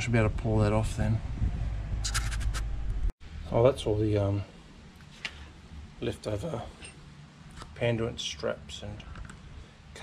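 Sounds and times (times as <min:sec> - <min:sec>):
steady low rumble: 0:00.0 - 0:05.0.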